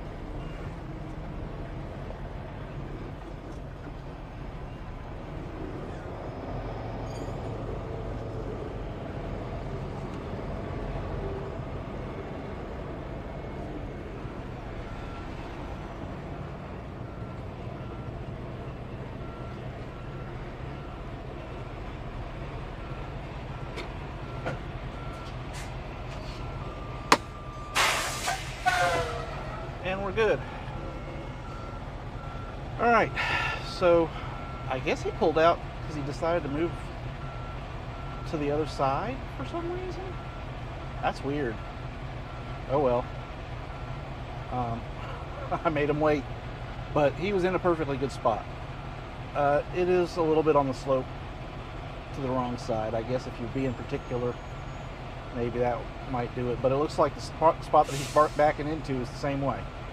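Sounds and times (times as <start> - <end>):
diesel truck engine running: 0.0 - 59.9
air brake hissing: 27.7 - 29.4, 57.8 - 58.6.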